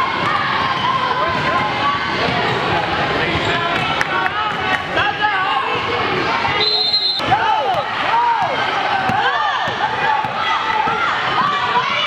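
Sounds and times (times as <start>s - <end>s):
voices in a hall: 0.0s - 12.0s.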